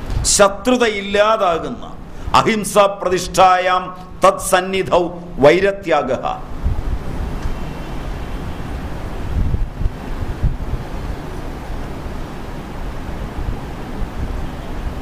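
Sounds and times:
wind buffeting microphone: 0:06.4 - 0:15.0.

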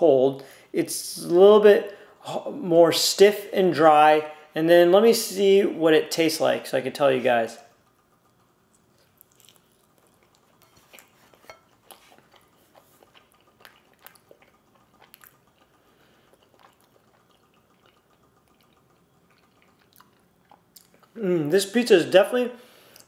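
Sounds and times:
person chewing pizza: 0:07.8 - 0:21.6.

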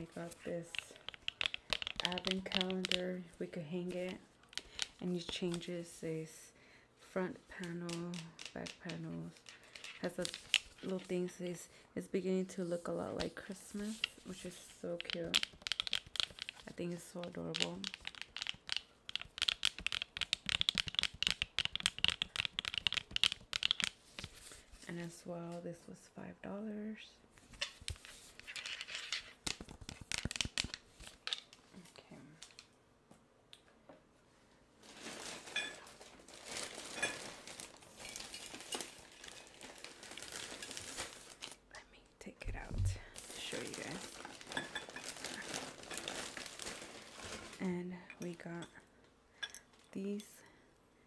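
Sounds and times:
crinkling packaging: 0:00.0 - 0:05.7, 0:07.5 - 0:11.3, 0:12.8 - 0:24.7, 0:27.6 - 0:31.7, 0:34.8 - 0:41.8, 0:42.5 - 0:47.7
fingernails tapping and scratching wood: 0:00.7 - 0:03.0, 0:17.8 - 0:23.9.

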